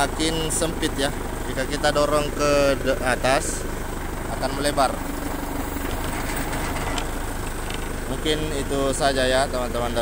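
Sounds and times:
forklift engine idling: 0:00.0 - 0:10.0.

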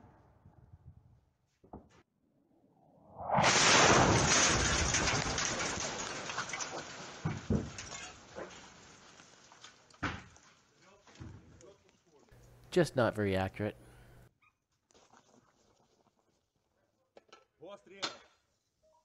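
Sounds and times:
shell exploding: 0:03.2 - 0:07.4.

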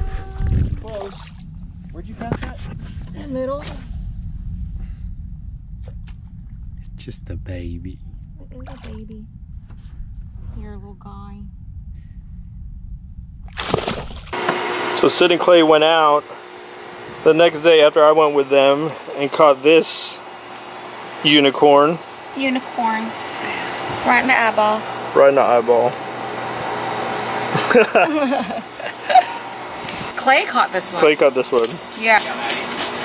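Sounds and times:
steady hum: 0:00.0 - 0:33.0
water splash: 0:00.5 - 0:02.0, 0:13.4 - 0:14.7
voices talking and laughing: 0:27.3 - 0:32.7.

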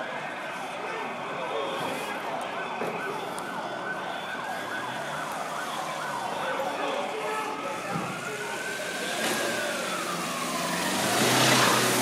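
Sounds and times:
police sirens wailing: 0:00.0 - 0:12.0
street noise hubbub: 0:00.0 - 0:12.0.

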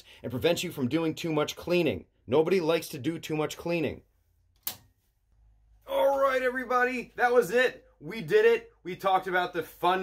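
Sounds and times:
man's voice: 0:00.0 - 0:04.0, 0:05.8 - 0:10.0.

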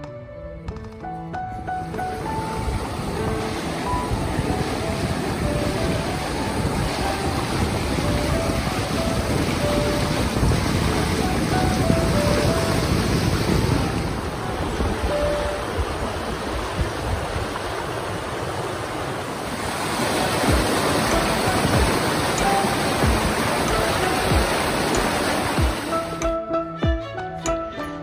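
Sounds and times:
soft background music: 0:00.0 - 0:16.8, 0:19.7 - 0:28.0
stream rushing over boulders: 0:01.6 - 0:26.2.

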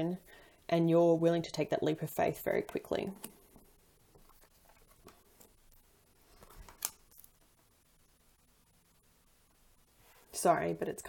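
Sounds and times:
person speaking: 0:00.0 - 0:03.4, 0:10.3 - 0:11.0
cards rustling and ticking: 0:02.5 - 0:07.6.

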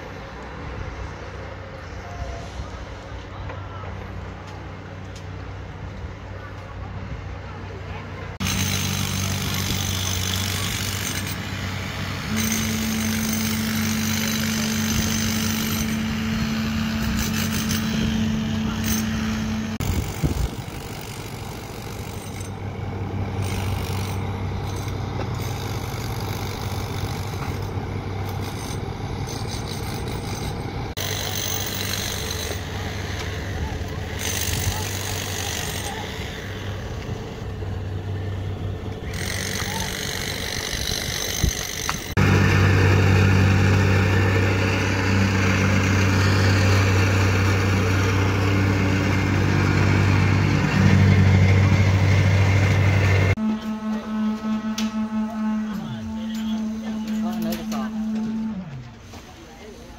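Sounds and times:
diesel excavator engine running: 0:00.0 - 0:59.9.

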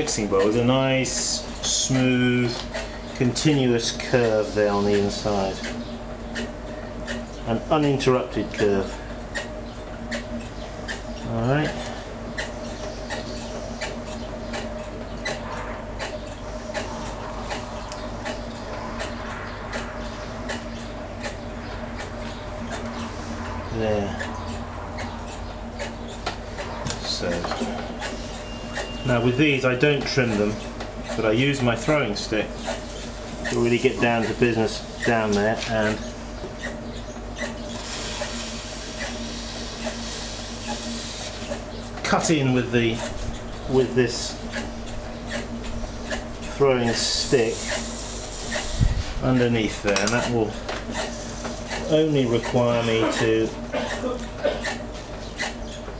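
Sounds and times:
potter's wheel motor humming: 0:00.0 - 0:55.9
short clicks and squeaks: 0:27.6 - 0:29.2.

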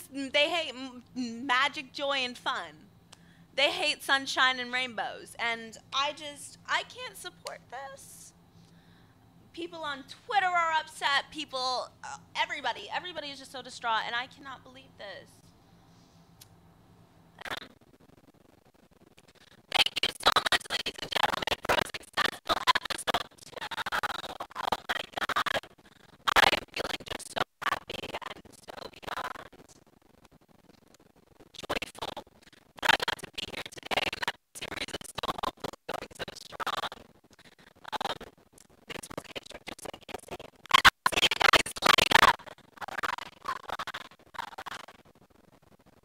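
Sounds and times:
distorted voice: 0:00.0 - 0:02.8, 0:03.6 - 0:08.3, 0:09.6 - 0:15.3, 0:19.7 - 0:25.6
distorted crackling speech: 0:00.0 - 0:02.9, 0:03.6 - 0:08.4, 0:09.5 - 0:15.5, 0:17.4 - 0:46.0.

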